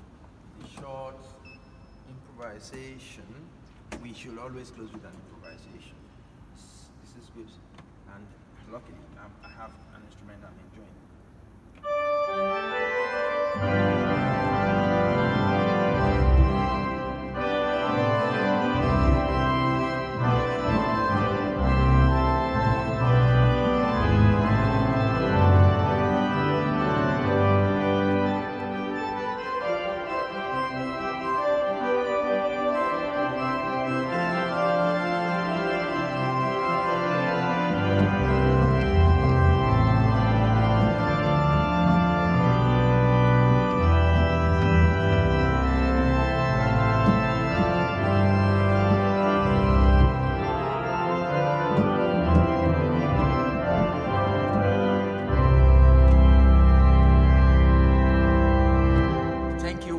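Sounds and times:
organ chords: 11.3 - 59.9
organ pedal bass notes: 11.8 - 59.9.

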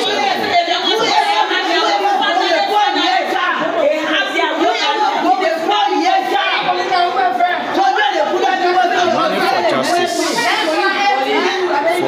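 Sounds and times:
women talking loudly: 0.0 - 12.0.

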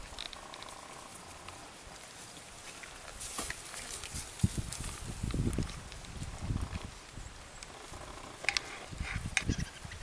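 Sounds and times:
animal sounds: 0.0 - 3.1, 6.3 - 10.0.

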